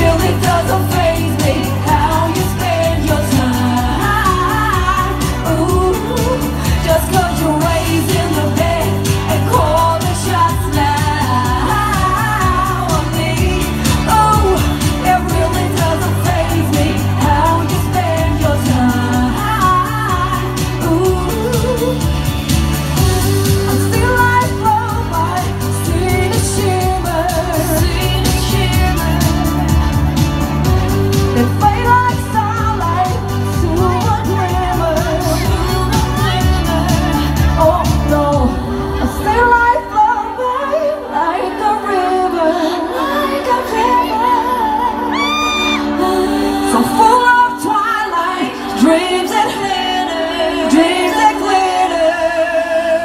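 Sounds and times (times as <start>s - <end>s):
pop backing music with bass: 0.0s - 53.0s
woman singing into a microphone: 0.0s - 53.0s.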